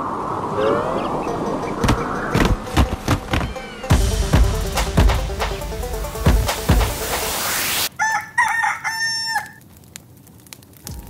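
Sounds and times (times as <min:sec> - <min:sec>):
rooster crowing: 0:07.9 - 0:09.6.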